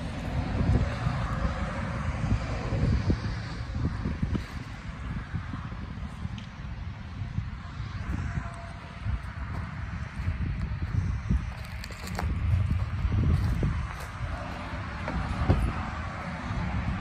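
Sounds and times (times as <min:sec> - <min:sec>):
wind rumble on microphone: 0:00.0 - 0:17.0.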